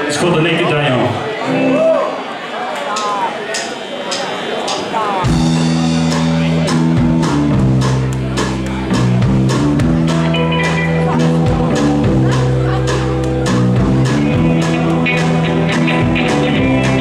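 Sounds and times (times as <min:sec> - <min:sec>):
rockabilly band playing: 0:01.4 - 0:02.0, 0:02.9 - 0:17.0.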